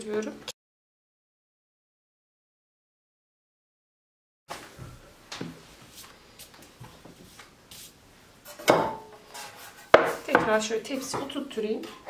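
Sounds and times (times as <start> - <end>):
hands rustling dough sheets: 5.4 - 8.2.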